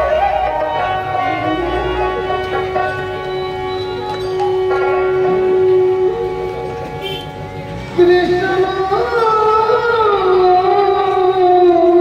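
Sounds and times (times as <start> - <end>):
flute: 0.0 - 7.3
harmonium: 0.0 - 12.0
violin: 0.0 - 12.0.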